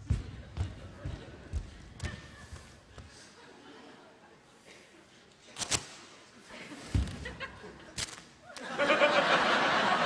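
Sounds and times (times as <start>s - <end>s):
bare footsteps on stage floor: 0.0s - 3.2s.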